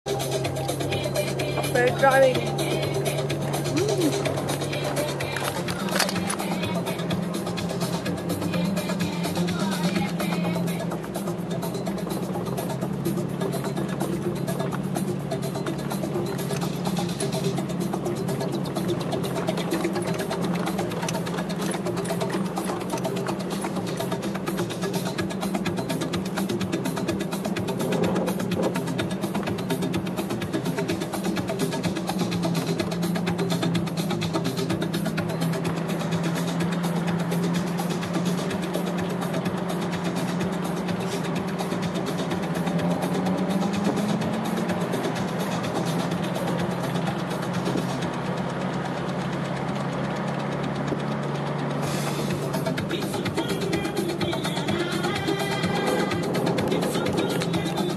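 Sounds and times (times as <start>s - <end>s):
vehicle engine droning: 0.0s - 57.9s.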